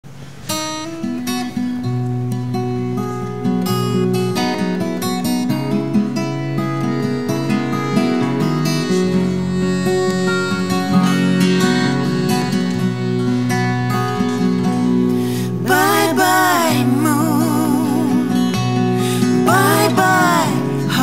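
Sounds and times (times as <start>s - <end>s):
acoustic guitars strumming: 0.1s - 21.0s
piano-accordion chords: 6.0s - 15.6s
women singing: 15.3s - 21.0s.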